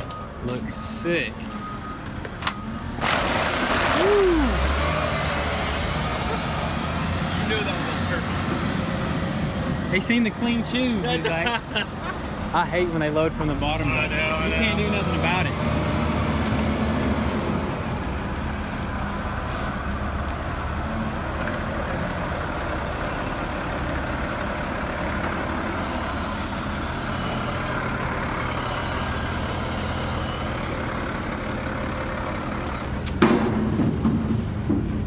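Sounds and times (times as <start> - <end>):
diesel engine running: 0.0 - 35.0
hiss: 25.7 - 27.8, 28.4 - 30.9.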